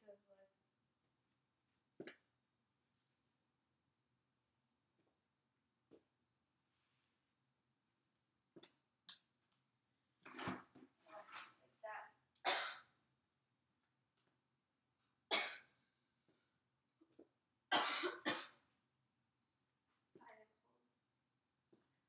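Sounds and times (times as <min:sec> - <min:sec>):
person coughing: 0:12.5 - 0:12.9, 0:15.3 - 0:15.6, 0:17.7 - 0:18.6.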